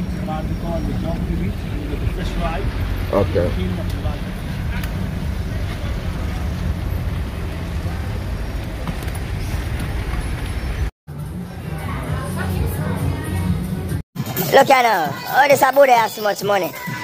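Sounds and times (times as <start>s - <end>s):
street traffic rumble: 0.0s - 14.3s.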